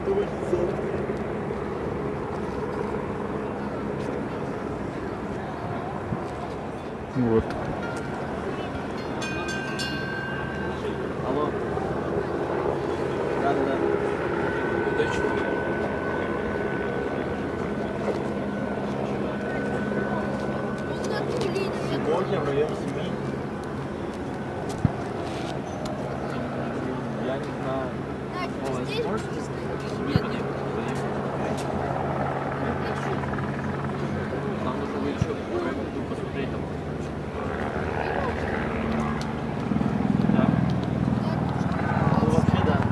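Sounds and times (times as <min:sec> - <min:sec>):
jet engines droning: 0:00.0 - 0:42.9.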